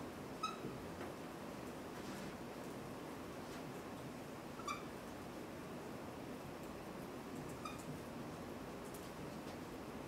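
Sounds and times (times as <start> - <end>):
quiet room hum: 0.0 - 10.0
marker squeaking on whiteboard: 7.6 - 7.9.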